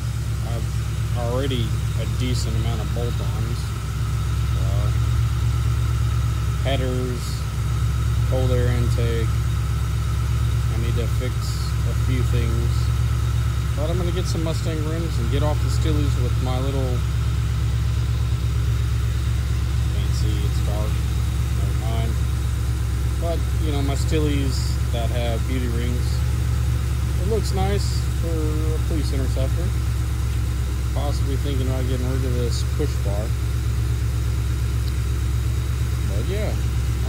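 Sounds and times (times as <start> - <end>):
car engine idling: 0.0 - 37.0.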